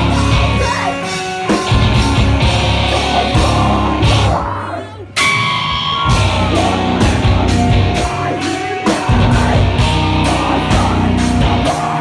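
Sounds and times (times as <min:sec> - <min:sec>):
bass guitar: 0:00.0 - 0:12.0
drums: 0:00.0 - 0:12.0
electric guitar: 0:00.0 - 0:12.0.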